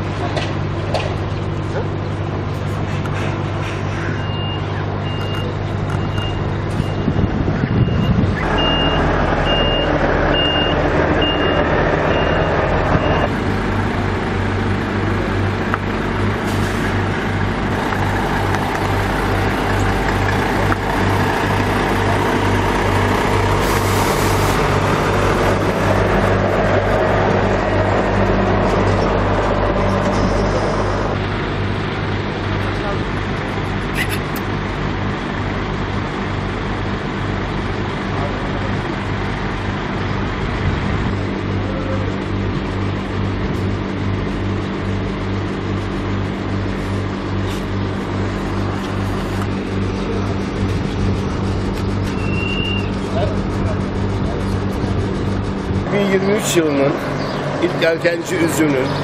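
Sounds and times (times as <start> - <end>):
diesel truck engines running: 0.0 - 59.0
reversing alarm beeping: 4.1 - 13.3, 52.1 - 53.0.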